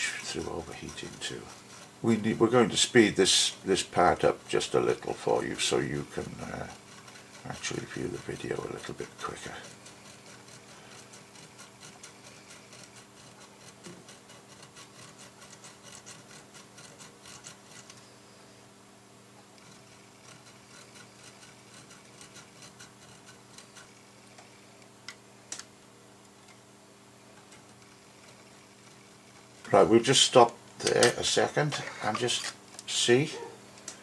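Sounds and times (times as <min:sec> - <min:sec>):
needle file rasping on metal: 0:00.0 - 0:18.3, 0:19.6 - 0:24.7.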